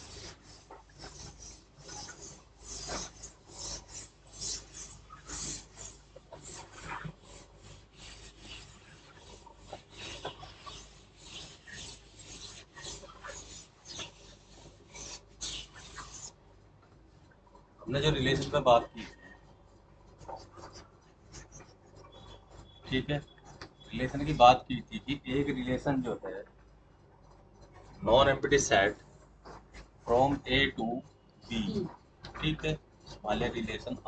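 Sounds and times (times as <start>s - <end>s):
duster scraping chalkboard: 0.0s - 16.4s, 17.9s - 24.6s, 27.7s - 34.0s.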